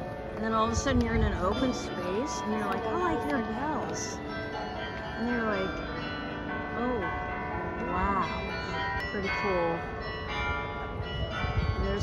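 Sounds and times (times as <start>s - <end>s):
carillon bells ringing: 0.0s - 12.0s.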